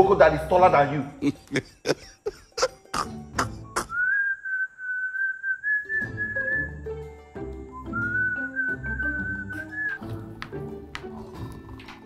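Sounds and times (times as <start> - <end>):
light background music with bass: 0.0 - 3.9, 6.0 - 12.0
man laughing: 1.2 - 4.0
person whistling a tune: 3.7 - 6.9, 7.6 - 10.0.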